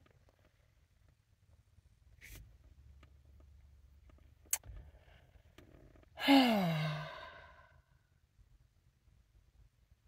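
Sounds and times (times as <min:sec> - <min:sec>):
woman sighing: 0:06.2 - 0:07.7.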